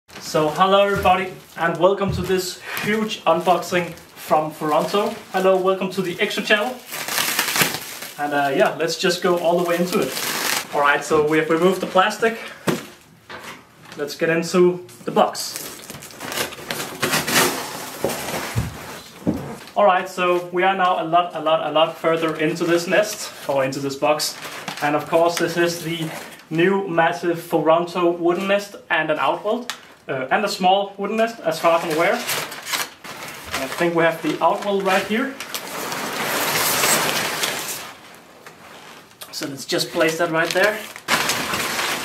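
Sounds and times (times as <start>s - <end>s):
packing rustling: 0.1s - 13.0s, 15.3s - 19.6s, 31.5s - 42.0s.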